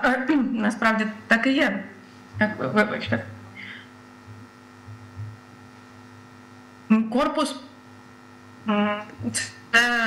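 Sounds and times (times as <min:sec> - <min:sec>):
woman speaking: 0:00.0 - 0:03.4, 0:06.9 - 0:07.8, 0:08.6 - 0:10.0
electrical mains hum: 0:00.0 - 0:10.0.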